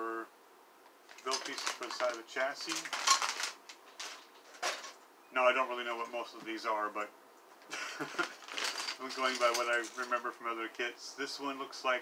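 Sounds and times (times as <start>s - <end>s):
plastic bag crinkling: 1.1s - 5.0s, 8.0s - 10.1s.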